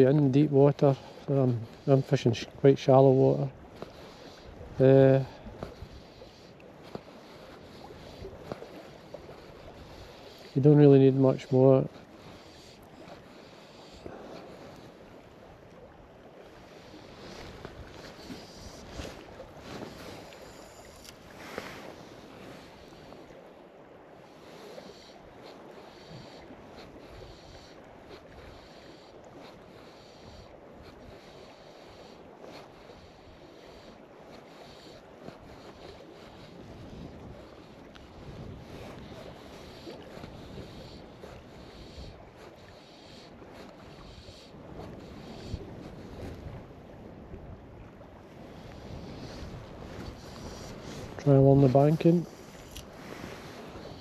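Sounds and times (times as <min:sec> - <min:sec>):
water lapping at shore: 0:00.0 - 0:54.0
wind buffeting microphone: 0:35.2 - 0:42.7, 0:43.4 - 0:54.0.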